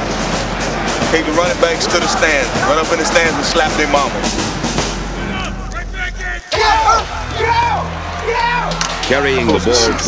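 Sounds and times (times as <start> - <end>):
background music: 0.0 - 10.0
people talking: 1.0 - 4.3, 9.1 - 10.0
man shouting: 5.2 - 8.7.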